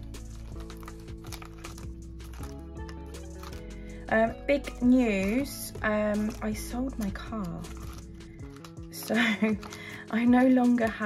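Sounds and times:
light instrumental music: 0.0 - 11.0.

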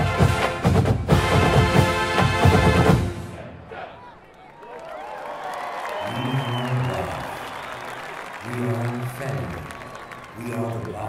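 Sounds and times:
stadium crowd applauding: 3.9 - 11.0
man speaking over public address: 6.0 - 7.6, 8.3 - 11.0.

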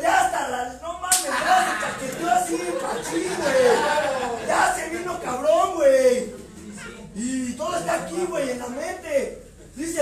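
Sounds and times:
men's excited voices: 0.0 - 8.8
men laughing: 1.3 - 5.4.

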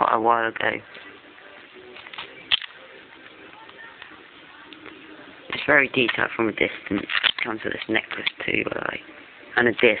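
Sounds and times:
plastic figure rubbing and clicks: 5.5 - 8.8.

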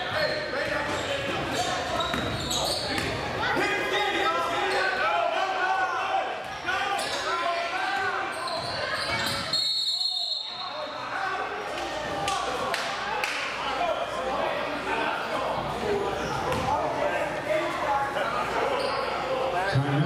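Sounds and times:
sneakers squeaking: 0.0 - 3.6, 8.2 - 10.9, 16.1 - 16.9, 18.1 - 19.8.

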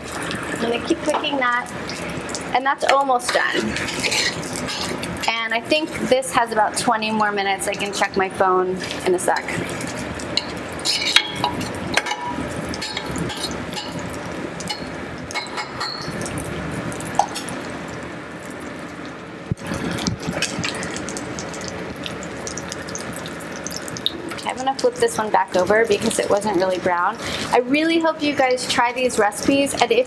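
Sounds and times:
latkes sizzling in hot oil: 0.0 - 30.0.

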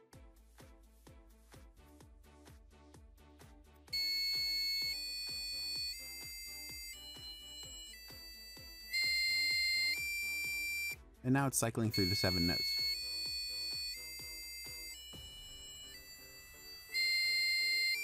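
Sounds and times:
quiet background music with beat: 0.0 - 18.0
buzzer playing a note scale: 3.9 - 11.0, 11.9 - 18.0.

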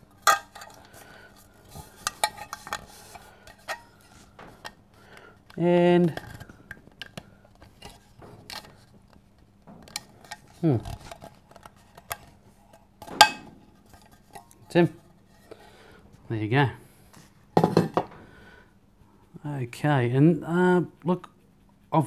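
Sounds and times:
metal cup clicks and scrapes: 0.1 - 4.8, 5.5 - 8.9, 9.8 - 14.7
metal clink: 13.1 - 13.6.

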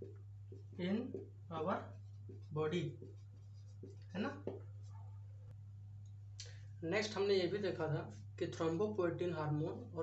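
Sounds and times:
marker pen scratching on whiteboard: 0.0 - 5.3.

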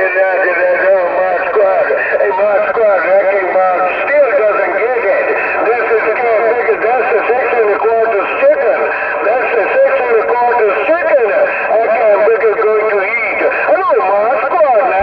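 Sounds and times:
tinny radio voices: 0.0 - 15.0.

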